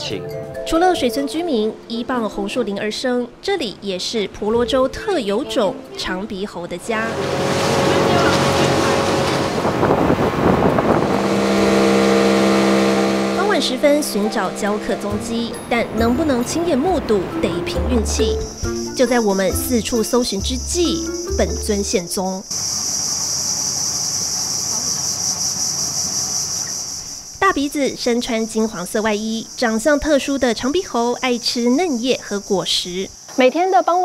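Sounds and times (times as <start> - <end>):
boat motor running: 6.8 - 22.0
wind buffeting microphone: 6.9 - 18.5
high-pitched insect chorus: 18.1 - 34.0.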